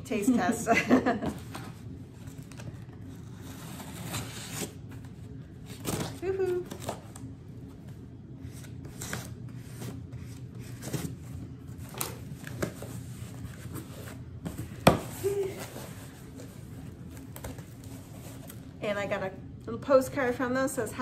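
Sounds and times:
low steady hum: 0.0 - 21.0
cardboard rustling and scraping: 1.4 - 7.2, 7.8 - 18.7.

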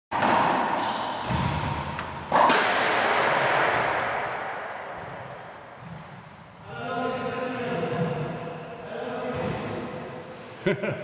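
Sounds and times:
squash ball hits echoing: 0.1 - 6.4.

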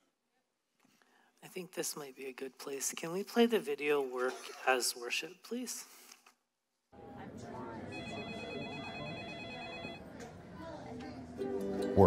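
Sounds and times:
indistinct chatter: 7.0 - 12.0
telephone ringing with electronic warble: 7.9 - 10.1.

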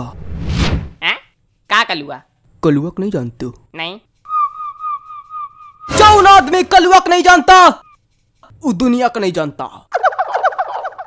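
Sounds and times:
high steady whistle: 4.3 - 6.1.

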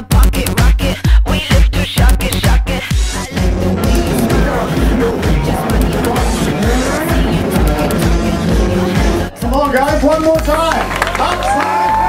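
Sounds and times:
heavy drum beat: 1.5 - 10.6
loud rock band music: 3.1 - 11.1.

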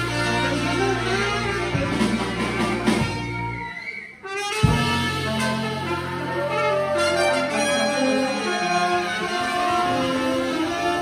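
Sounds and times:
brass band playing: 0.0 - 11.0
drums: 0.0 - 11.0.

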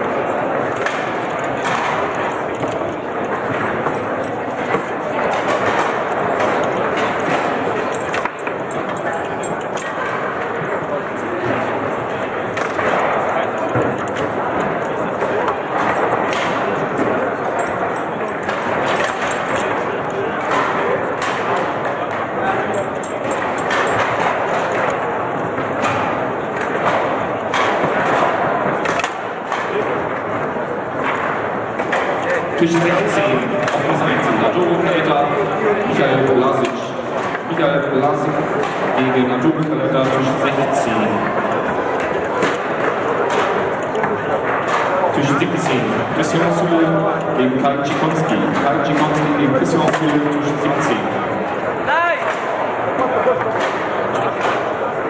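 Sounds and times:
foosball ball and figures clacking: 0.0 - 11.9, 12.5 - 35.0, 38.5 - 47.0, 52.2 - 55.0
chatter of many voices: 0.0 - 55.0.

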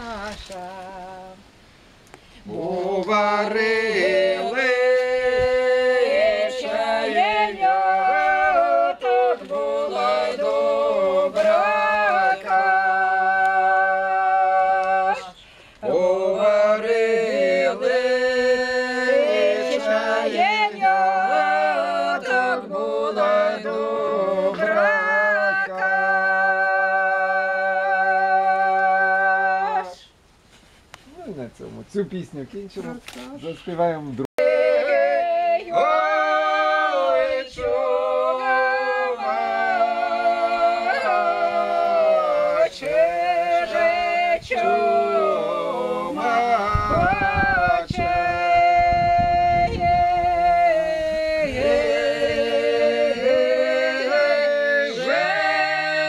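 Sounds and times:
group singing folk song unaccompanied: 0.0 - 30.2, 34.3 - 56.0.

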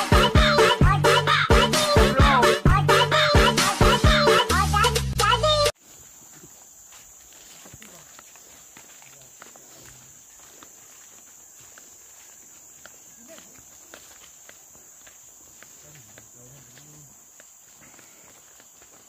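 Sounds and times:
high-pitched insect chorus: 5.4 - 19.0
footsteps on leaf litter: 5.8 - 19.0.

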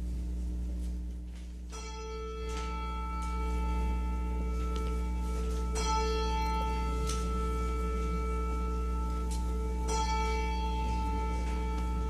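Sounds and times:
steady low hum: 0.0 - 12.0
bell-like instrumental notes: 1.7 - 12.0.

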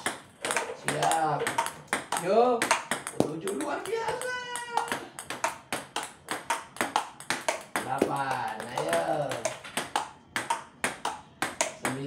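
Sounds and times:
table tennis ball clicking: 0.0 - 12.0.

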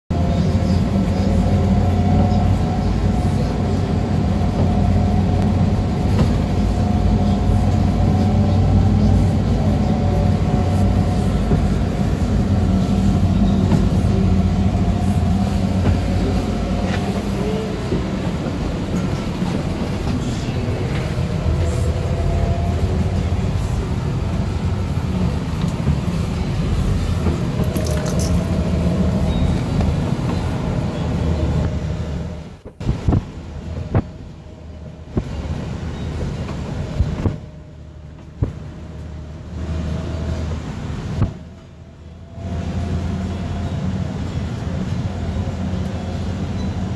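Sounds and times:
vehicle rattles: 0.1 - 41.6
vehicle engine droning inside: 0.1 - 46.9.

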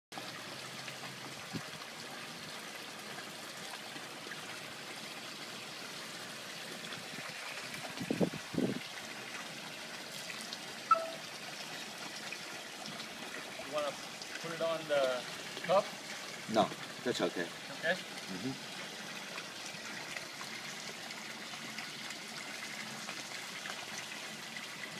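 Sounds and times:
trickle of running water: 0.1 - 24.9.

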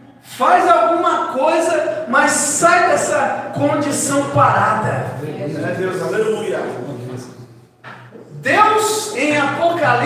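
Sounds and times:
man preaching over microphone: 0.3 - 7.5, 8.2 - 10.0.

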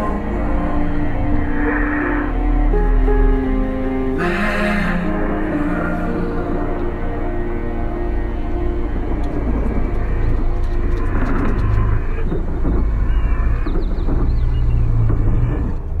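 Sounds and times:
rough low rumble: 0.0 - 16.0
steady music tones: 0.0 - 16.0.

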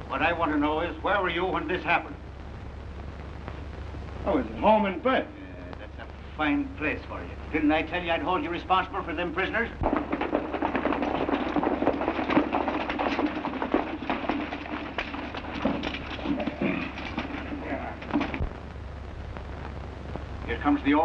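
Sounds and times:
voices: 0.0 - 2.2, 3.4 - 9.8, 13.2 - 18.5, 20.4 - 21.0
horses galloping on dirt: 9.5 - 18.6.

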